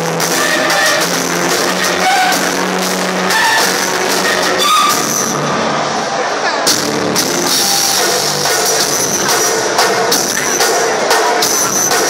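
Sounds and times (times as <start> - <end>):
live band playing loudly: 0.0 - 12.0.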